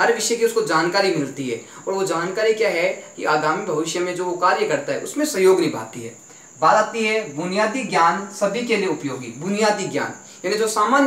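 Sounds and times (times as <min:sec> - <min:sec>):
faint high-pitched whine: 0:00.0 - 0:11.0
man speaking: 0:00.0 - 0:11.0.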